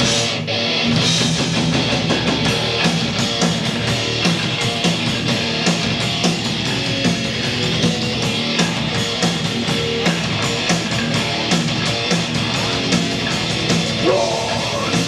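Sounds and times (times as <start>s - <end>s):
live rock band playing: 0.0s - 15.0s.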